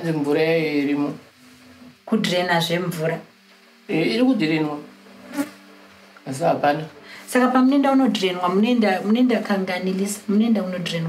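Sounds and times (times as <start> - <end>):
thin steady buzz: 0.0 - 11.0.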